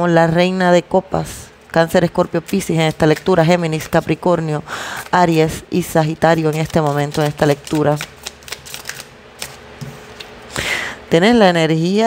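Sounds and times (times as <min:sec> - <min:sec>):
cards being shuffled: 0:06.1 - 0:10.4.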